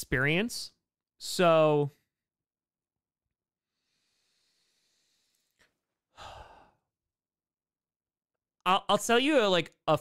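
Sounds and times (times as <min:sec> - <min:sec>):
man sighing: 0:06.1 - 0:06.8.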